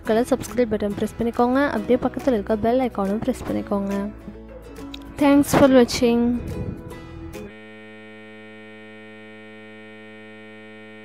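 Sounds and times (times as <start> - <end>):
music: 0.0 - 7.6
electrical hum with overtones: 6.4 - 11.0.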